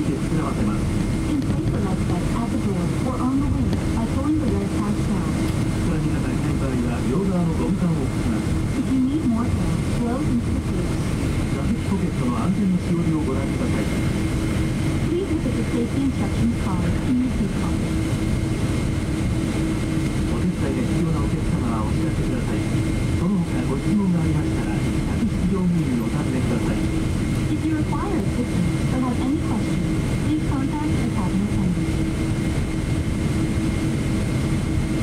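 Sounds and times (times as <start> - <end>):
engine rumble in aircraft cabin: 0.0 - 35.0
indistinct passenger chatter: 0.0 - 35.0.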